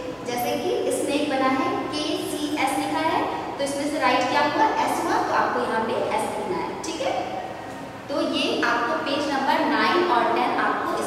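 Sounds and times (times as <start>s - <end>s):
woman talking: 0.0s - 7.3s, 8.1s - 11.0s.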